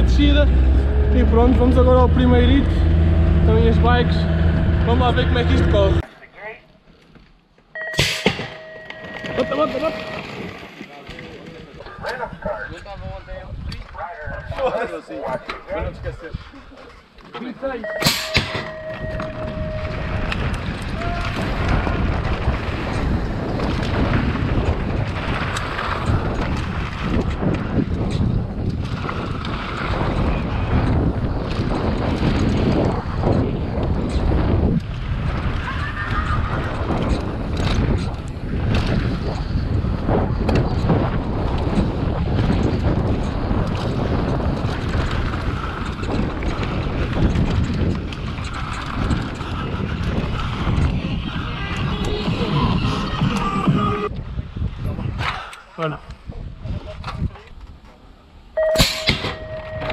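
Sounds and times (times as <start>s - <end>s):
wind buffeting microphone: 0.0s - 6.0s, 9.0s - 17.0s, 17.9s - 57.8s
tyres on loose dirt: 13.6s - 59.9s
bike knocks and rattles: 36.5s - 51.0s.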